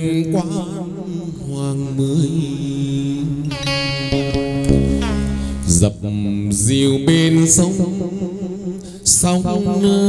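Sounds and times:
ritual music with wavering vocal melody: 0.0 - 10.0.

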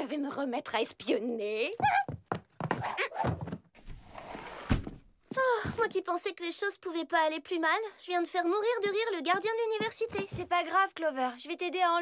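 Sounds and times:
short knocks and thuds: 1.8 - 3.7.

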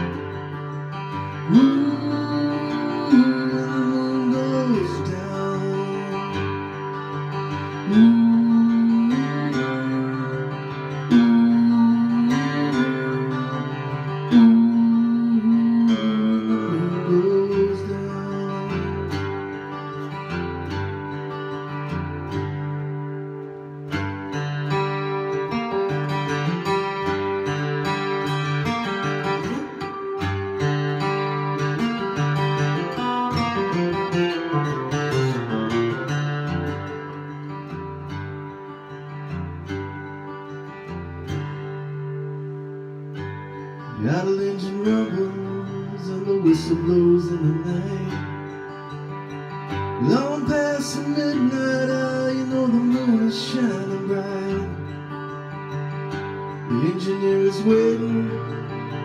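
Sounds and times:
acoustic guitar playing: 0.0 - 59.0.

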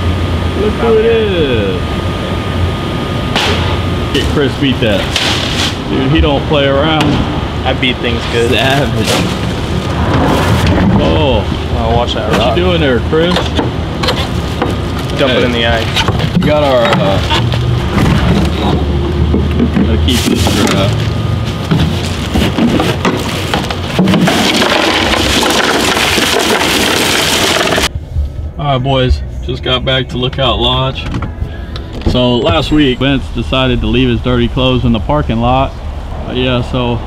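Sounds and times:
steady low rumble: 0.0 - 24.1, 27.9 - 37.0
sharp knock: 3.3 - 3.8
bag of ice crackling and rustling: 8.2 - 10.7, 20.1 - 27.9.

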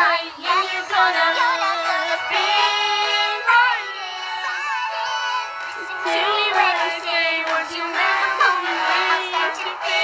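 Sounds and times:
high voice singing: 0.0 - 10.0.

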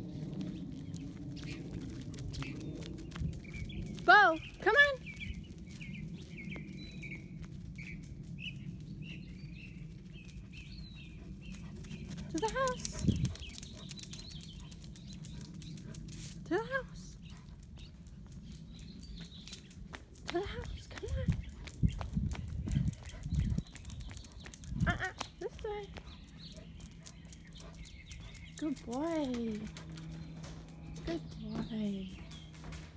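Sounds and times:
birds chirping: 0.0 - 32.9
footsteps clicking on paving: 0.0 - 32.9.

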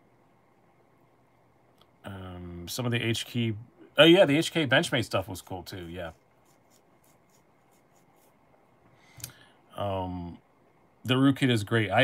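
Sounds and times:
faint soft scratching: 4.2 - 8.6.

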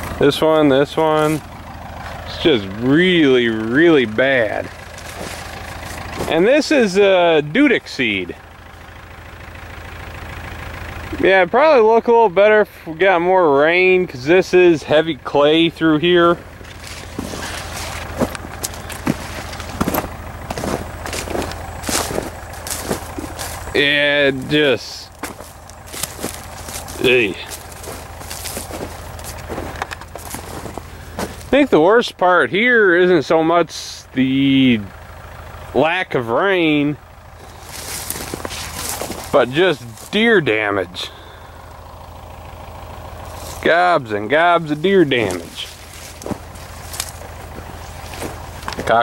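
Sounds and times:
steady low rumble: 0.0 - 33.5, 34.7 - 49.0
low engine-like hum: 0.0 - 49.0
footsteps through corn leaves: 4.4 - 6.9, 16.6 - 31.6, 37.4 - 40.4, 43.2 - 43.7, 44.6 - 49.0
small crackles: 4.7 - 6.4, 16.6 - 23.8, 25.1 - 31.6, 37.4 - 40.2, 45.3 - 49.0.

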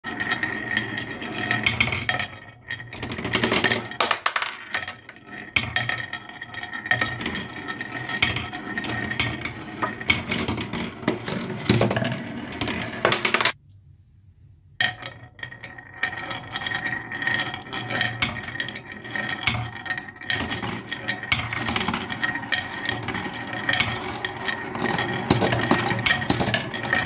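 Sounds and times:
marbles rolling on wood: 0.0 - 13.6, 14.8 - 27.0
marbles clicking and clacking: 0.1 - 13.6, 14.8 - 27.0.

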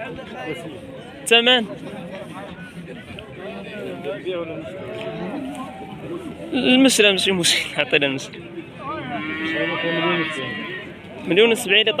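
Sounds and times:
cow mooing: 8.9 - 11.0.

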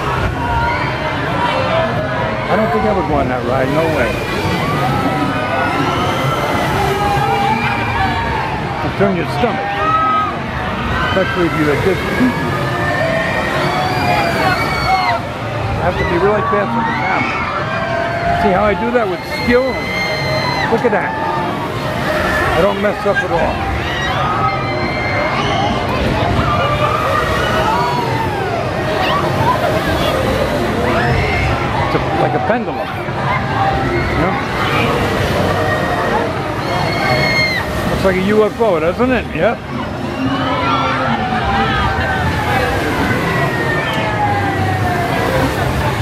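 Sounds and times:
thrill ride din: 0.0 - 46.0
riders screaming: 2.4 - 8.9, 9.5 - 32.2, 33.3 - 38.6, 40.0 - 46.0.

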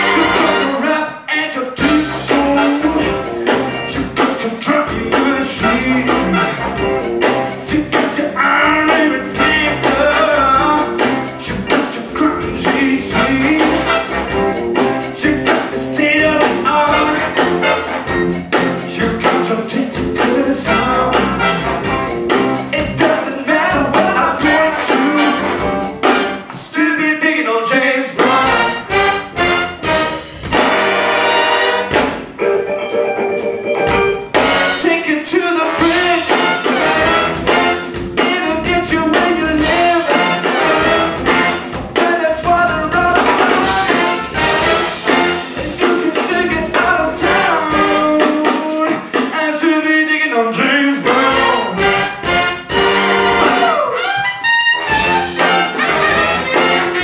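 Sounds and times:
big band playing funk: 0.0 - 57.0
punchy brass stabs: 24.6 - 26.5, 28.2 - 32.3, 34.4 - 35.0, 35.6 - 38.6, 39.8 - 41.7, 43.3 - 45.6, 51.1 - 57.0
horn hits: 33.9 - 38.8, 51.1 - 57.0
tenor saxophone: 51.2 - 57.0.

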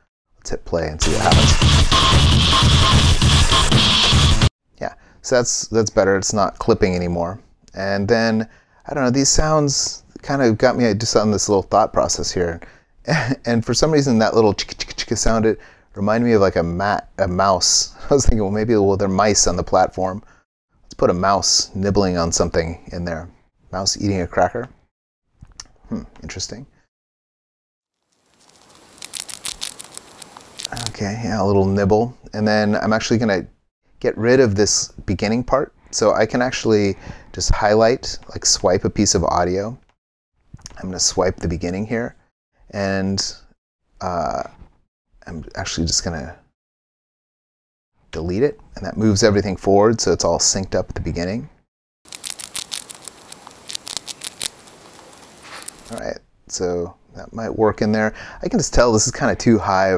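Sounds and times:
mouse nibbling clicks: 28.3 - 30.9, 52.1 - 56.0
faint hiss: 52.2 - 56.0.

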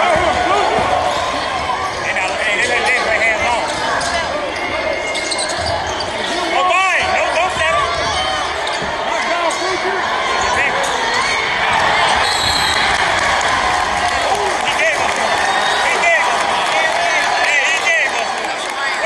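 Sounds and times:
hubbub of crowd voices: 0.0 - 19.0
sneakers squeaking: 0.1 - 13.1.

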